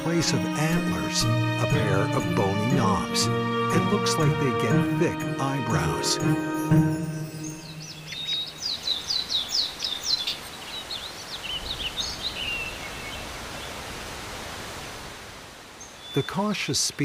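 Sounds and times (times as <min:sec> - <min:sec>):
songbird singing: 0:00.0 - 0:13.8, 0:15.8 - 0:17.0
outdoor hiss: 0:07.4 - 0:17.0.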